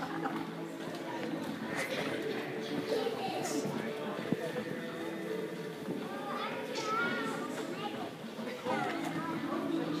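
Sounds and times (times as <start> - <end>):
young children talking and calling out: 0.7 - 10.0
high child's voice: 6.1 - 9.4.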